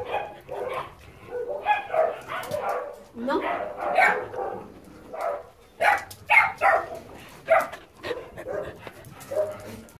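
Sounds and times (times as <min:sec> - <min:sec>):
dogs barking: 0:00.0 - 0:09.9.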